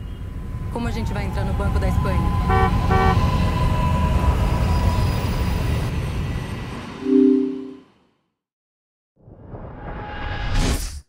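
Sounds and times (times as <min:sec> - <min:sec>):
traffic rumble: 0:00.0 - 0:06.2
car horn honks: 0:02.5 - 0:03.2.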